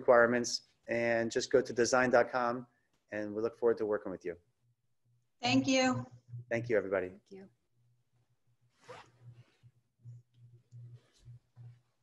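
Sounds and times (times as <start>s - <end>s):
faint low hum: 0.0s - 8.2s, 8.9s - 12.0s.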